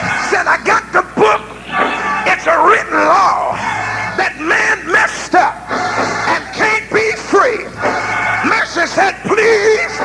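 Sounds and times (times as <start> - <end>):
background music: 0.0 - 10.0
preacher chanting: 0.0 - 10.0.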